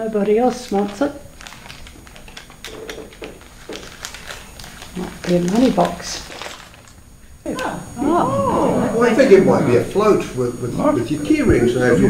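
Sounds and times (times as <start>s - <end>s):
wrapping paper crackling: 0.2s - 7.3s.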